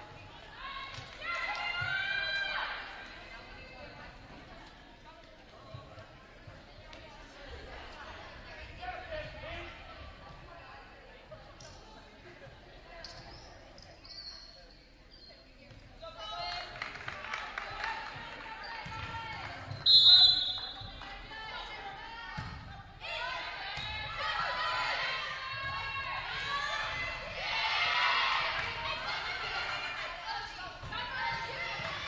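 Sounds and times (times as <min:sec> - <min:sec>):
referee's whistle: 0:19.7 - 0:20.8
players and spectators shouting: 0:23.0 - 0:32.0.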